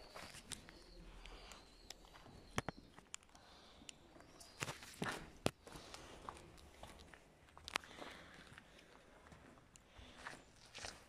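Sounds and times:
footsteps on rubble: 0.0 - 0.9, 4.2 - 11.0.

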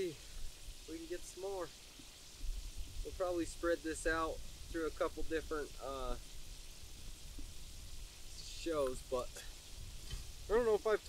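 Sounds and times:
light wind on microphone: 0.0 - 11.0
man speaking: 0.9 - 1.7, 3.1 - 6.2, 8.4 - 9.5, 10.5 - 11.0.

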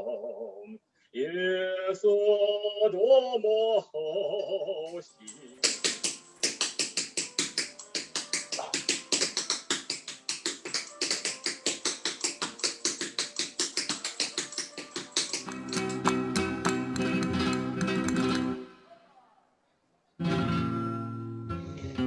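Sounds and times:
dance shoes striking hard floor: 5.6 - 18.5
strummed flamenco guitar: 15.4 - 18.7, 20.2 - 22.0.

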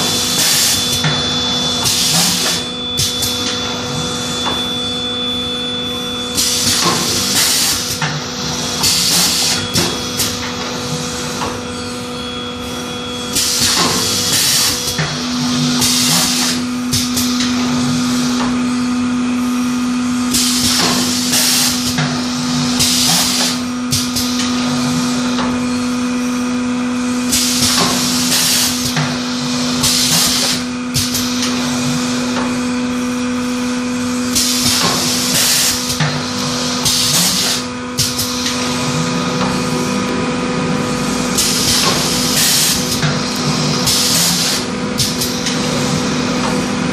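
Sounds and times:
machine hum: 0.0 - 46.9
compressed air hissing: 41.0 - 46.1.

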